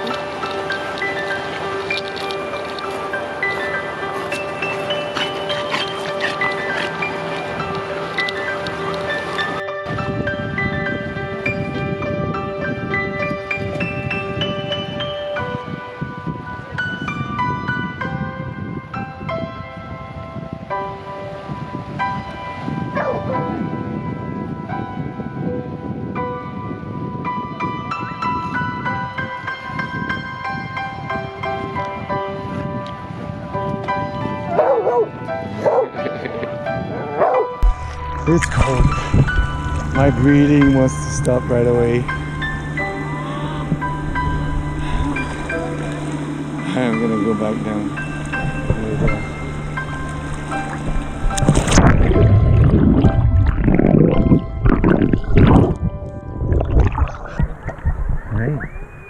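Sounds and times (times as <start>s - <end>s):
rushing water: 0.0s - 11.9s, 37.6s - 58.5s
soft background music: 0.0s - 57.9s.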